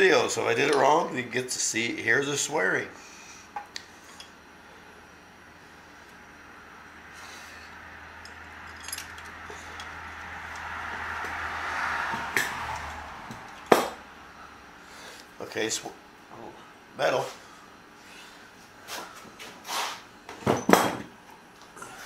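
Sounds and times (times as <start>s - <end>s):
metal parts clinking and tapping: 8.2s - 10.6s.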